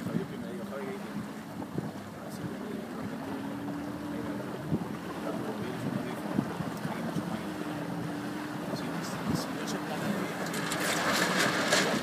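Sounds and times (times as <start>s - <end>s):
motorboat engine running: 0.0s - 12.0s
wind and water rushing: 0.0s - 12.0s.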